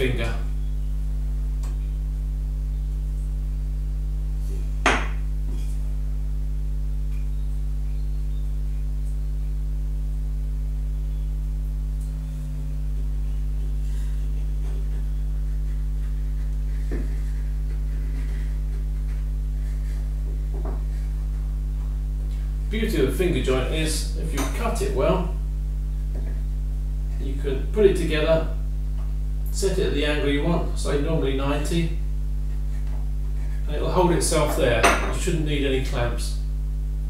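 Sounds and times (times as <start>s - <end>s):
electrical hum with buzzing overtones: 0.0s - 37.0s.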